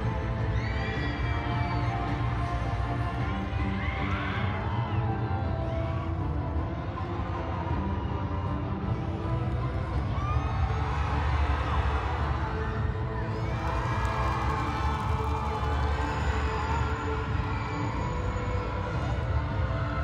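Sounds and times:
audience cheering and screaming: 0.0s - 20.0s.

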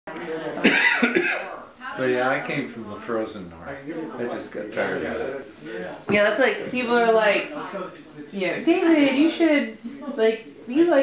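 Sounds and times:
cough or laugh: 0.6s - 1.6s.

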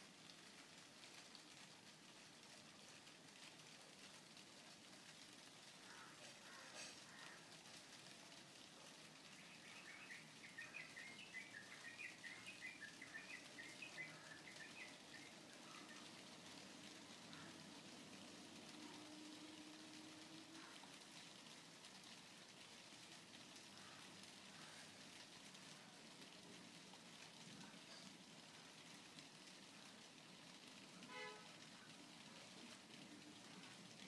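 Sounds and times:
faint steady hiss: 0.0s - 34.0s.

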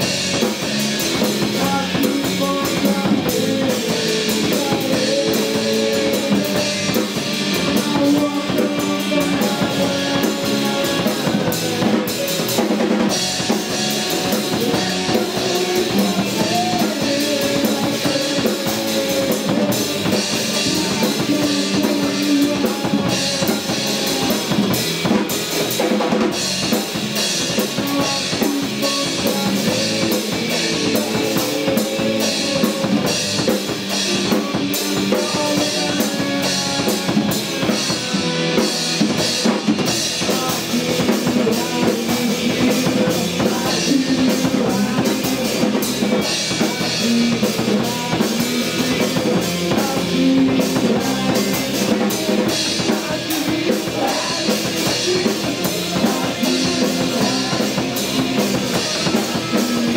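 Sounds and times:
bass guitar: 0.0s - 59.9s
drum kit beat: 0.0s - 59.9s
electric guitar: 0.0s - 59.9s
keyboard: 0.0s - 59.9s.

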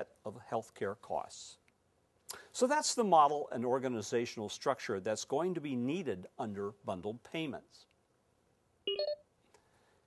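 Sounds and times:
short electronic beeps: 8.9s - 9.3s.

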